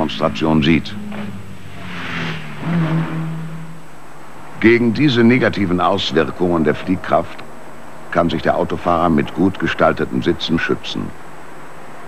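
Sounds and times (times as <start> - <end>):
car engine driving fast: 0.0 - 7.4.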